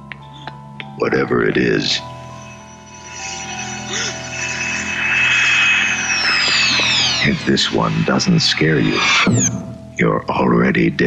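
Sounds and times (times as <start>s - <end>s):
high whine over rushing hiss: 0.3s - 10.0s.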